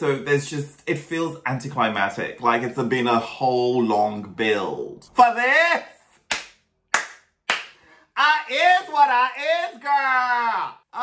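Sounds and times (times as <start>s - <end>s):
sharp hand claps: 6.2s - 7.8s.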